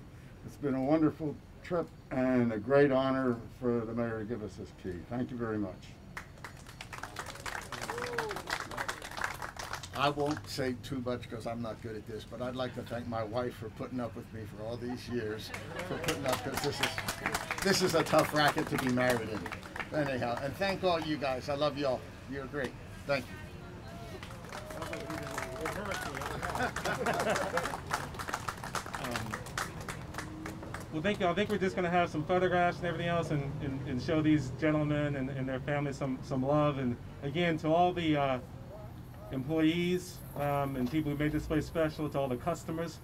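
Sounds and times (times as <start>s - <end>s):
crowd clapping: 6.2s - 10.6s, 15.4s - 21.4s, 24.1s - 31.2s
small group applauding: 6.2s - 10.6s, 15.4s - 21.2s, 24.0s - 31.2s
indistinct talking: 14.4s - 33.3s.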